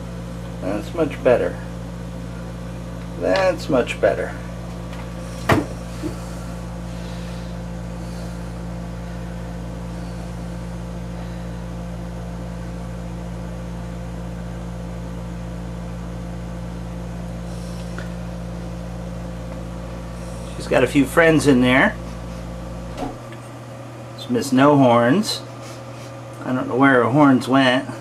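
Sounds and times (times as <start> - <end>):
low machinery hum: 0.0 - 28.0.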